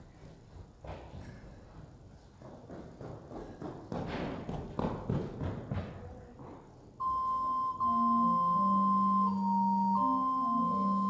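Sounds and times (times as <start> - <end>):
footsteps: 0.0 - 7.0
organ playing slow chords: 7.0 - 11.0.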